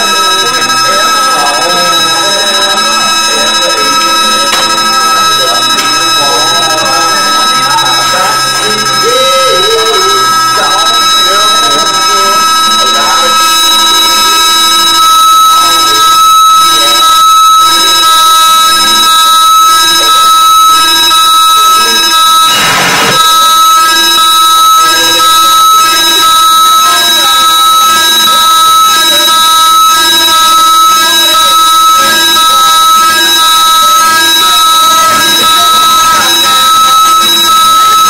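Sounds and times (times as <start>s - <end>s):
harsh electronic noise: 0.0s - 38.0s
high whining tones: 0.0s - 38.0s
wavering lower tones: 0.0s - 38.0s.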